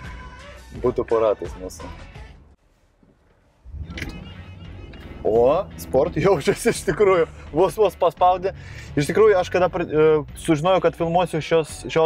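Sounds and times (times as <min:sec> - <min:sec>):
car engine rumble: 0:02.8 - 0:09.2.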